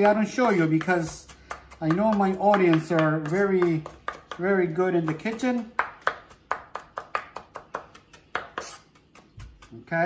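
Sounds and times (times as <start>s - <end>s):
knife chopping on wooden board: 0.0s - 10.0s.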